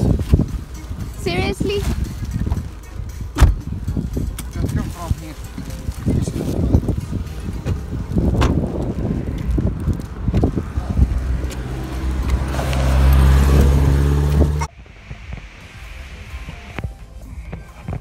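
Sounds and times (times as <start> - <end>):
low rumble: 0.0 - 17.1.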